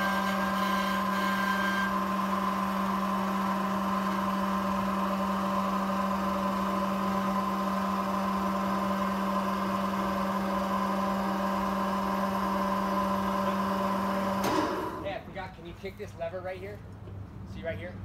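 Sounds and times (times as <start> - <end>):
scissor lift motor humming: 0.0 - 15.1.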